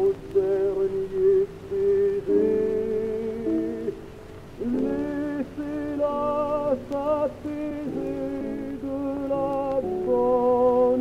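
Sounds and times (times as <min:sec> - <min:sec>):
man singing softly: 0:00.0 - 0:11.0
piano accompaniment: 0:00.0 - 0:11.0.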